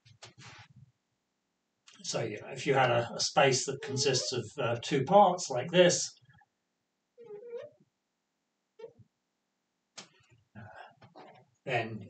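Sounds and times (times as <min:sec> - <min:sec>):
marker squeaking on glass: 0:03.7 - 0:04.4, 0:07.2 - 0:07.8, 0:11.0 - 0:11.4.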